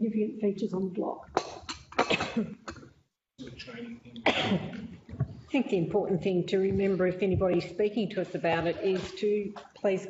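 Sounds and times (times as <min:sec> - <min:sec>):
person coughing: 0:01.7 - 0:02.9, 0:04.2 - 0:05.0.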